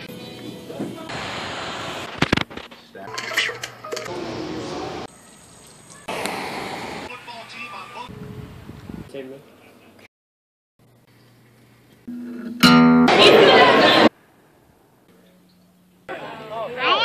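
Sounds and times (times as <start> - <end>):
voices: 4.0 - 8.1, 13.1 - 14.1, 16.1 - 17.0.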